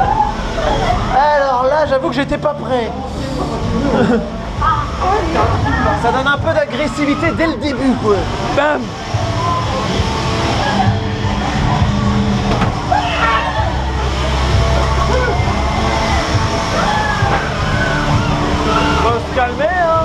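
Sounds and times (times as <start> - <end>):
people shrieking: 0.0 - 1.2, 6.7 - 8.0, 10.4 - 12.2, 12.8 - 19.4
low droning rumble: 0.0 - 20.0
scattered voices: 0.0 - 20.0.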